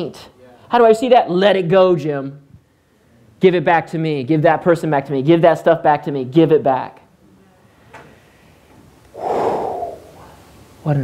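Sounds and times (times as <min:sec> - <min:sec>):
man sighing: 0:09.2 - 0:10.4.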